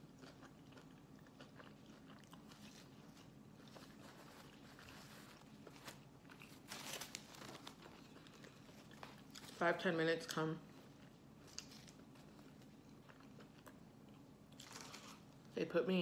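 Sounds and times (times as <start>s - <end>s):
person chewing food: 0.0s - 6.7s, 7.4s - 9.6s, 10.7s - 15.3s
faint steady hum: 0.0s - 16.0s
paper wrapper rustling: 4.0s - 8.0s.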